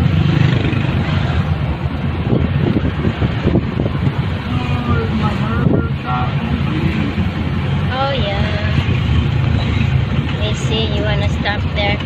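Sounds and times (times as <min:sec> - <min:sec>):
vehicle engine and road rumble: 0:00.0 - 0:12.0
wind buffeting microphone: 0:00.0 - 0:12.0.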